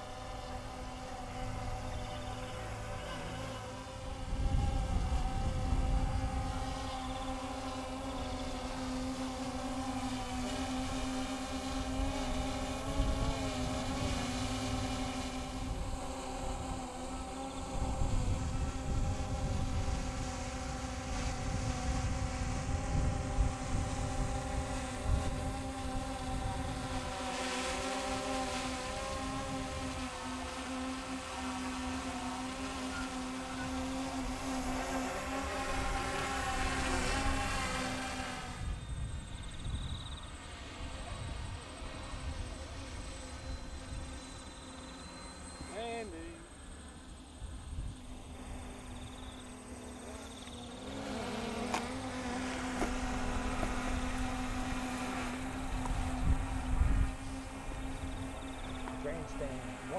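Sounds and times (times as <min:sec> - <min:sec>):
electric motors and propellers humming: 0:00.0 - 0:59.9
wind buffeting microphone: 0:04.0 - 0:27.3, 0:51.4 - 0:59.9.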